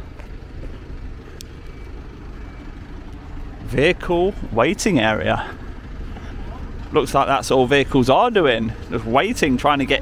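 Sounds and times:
lorry engine idling: 0:00.0 - 0:10.0.

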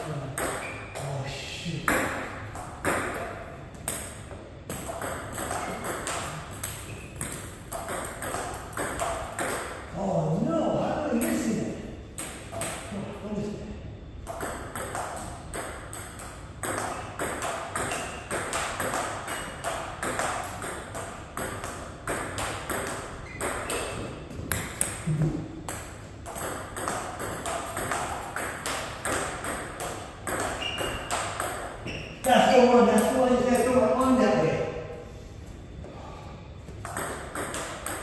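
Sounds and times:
ping pong ball hitting paddles: 0:00.3 - 0:01.1, 0:01.9 - 0:09.9, 0:12.2 - 0:12.9, 0:14.2 - 0:34.0, 0:36.8 - 0:38.0
ball bouncing on table: 0:01.9 - 0:09.8, 0:14.2 - 0:32.4, 0:36.8 - 0:38.0.

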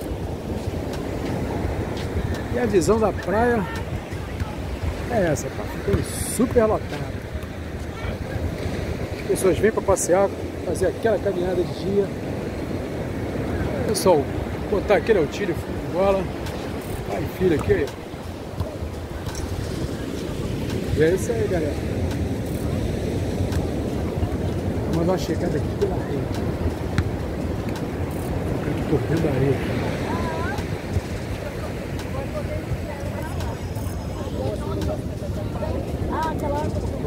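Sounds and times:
chatter of beachgoers: 0:00.0 - 0:37.0
surf: 0:00.0 - 0:37.0
wind on microphone: 0:00.0 - 0:37.0
nearby voices: 0:06.9 - 0:08.6.

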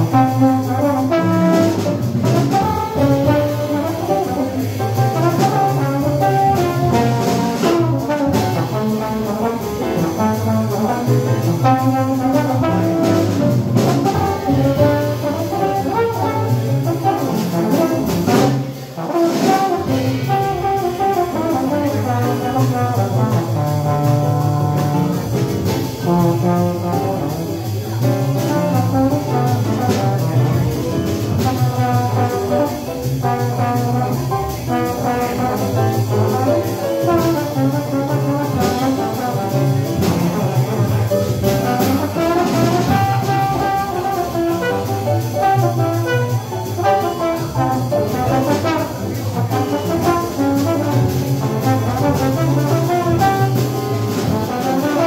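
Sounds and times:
jazz band playing: 0:00.0 - 0:55.0
trombone playing: 0:00.0 - 0:55.0.

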